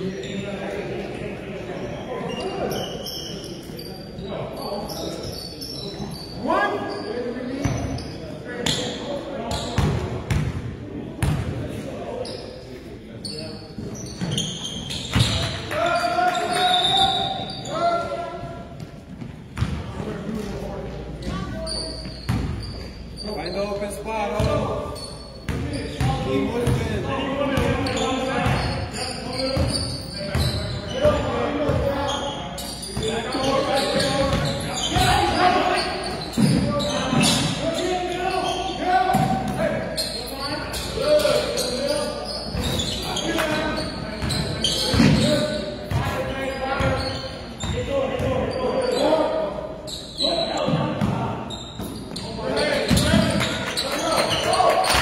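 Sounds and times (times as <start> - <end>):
voices echoing in gym: 0.0 - 55.0.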